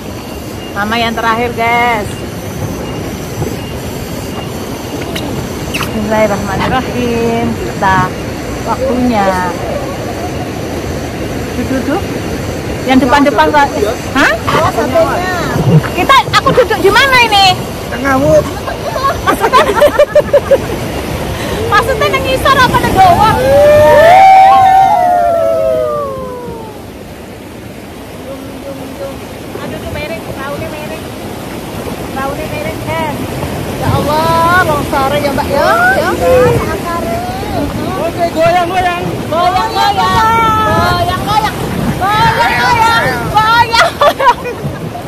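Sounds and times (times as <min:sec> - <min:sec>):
river rushing over rocks: 0:00.0 - 0:45.0
people whooping: 0:08.7 - 0:10.8, 0:21.4 - 0:27.0, 0:35.6 - 0:38.4.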